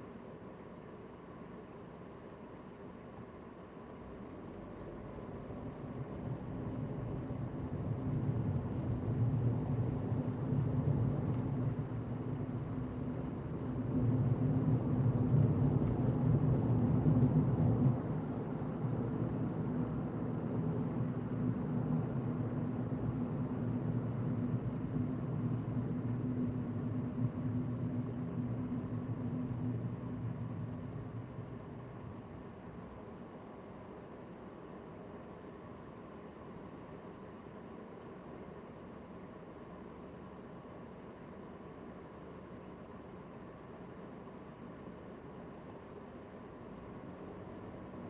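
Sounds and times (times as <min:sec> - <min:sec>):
car engine and road noise: 0:00.0 - 0:33.8, 0:38.3 - 0:48.0.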